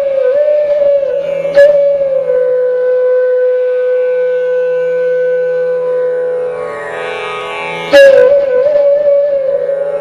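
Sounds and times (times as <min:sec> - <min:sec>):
flute holding long note: 0:00.0 - 0:10.0.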